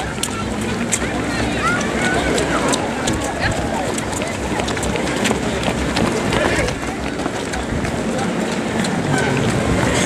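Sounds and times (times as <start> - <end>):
indistinct voices: 0.0 - 10.0
running footsteps on asphalt: 0.0 - 10.0.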